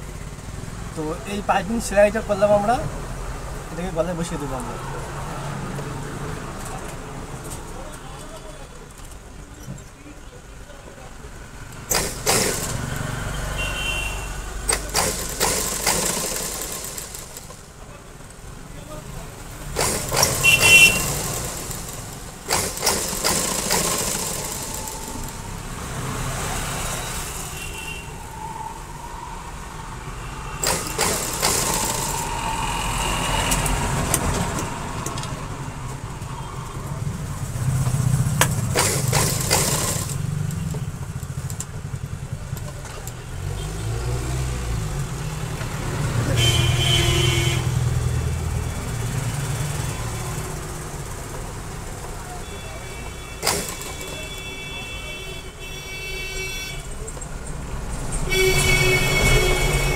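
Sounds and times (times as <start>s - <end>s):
electric sewing machine stitching: 11.9s - 13.0s, 14.7s - 17.6s, 19.7s - 25.4s, 30.6s - 32.4s, 38.6s - 40.2s, 53.4s - 54.2s.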